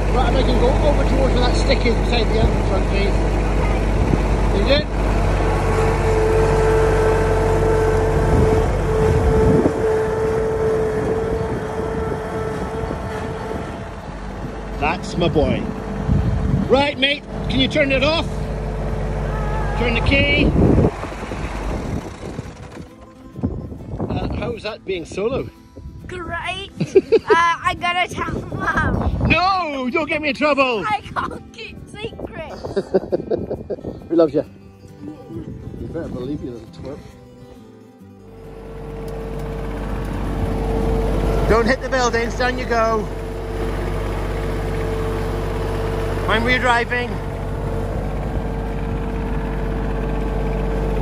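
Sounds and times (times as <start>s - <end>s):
tractor engine shutting off: 0.0s - 25.1s, 38.0s - 51.0s.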